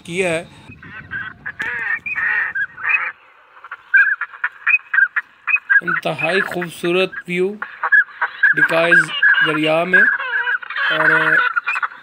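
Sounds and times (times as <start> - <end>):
ducks calling: 0.0 - 12.0.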